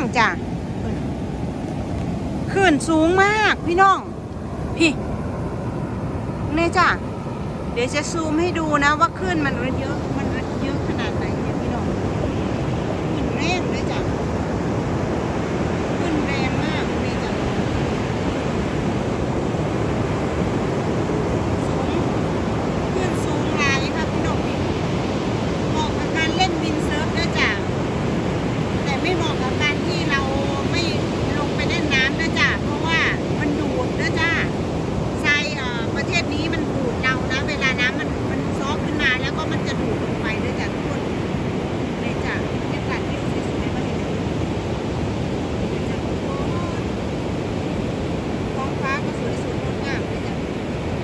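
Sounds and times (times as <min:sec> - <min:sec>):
gulls calling: 0:00.0 - 0:51.0
surf breaking on a beach: 0:00.0 - 0:51.0
wind noise on microphone: 0:00.0 - 0:51.0.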